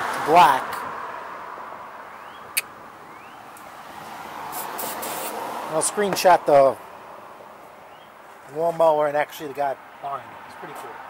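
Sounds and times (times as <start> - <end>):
outdoor background noise: 0.0 - 11.0.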